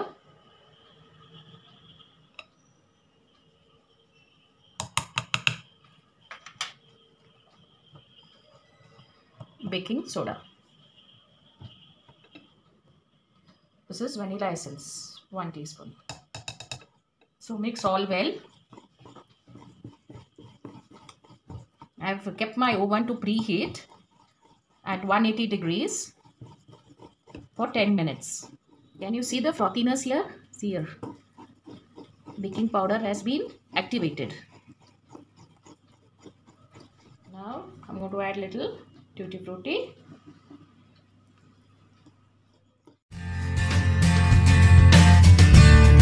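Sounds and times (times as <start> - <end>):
whisk clinking against glass bowl: 16.0 - 40.7.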